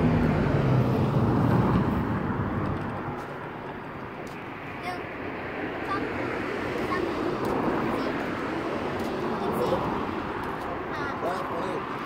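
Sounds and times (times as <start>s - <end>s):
car driving along street: 0.0s - 12.0s
traffic rumble: 0.0s - 12.0s.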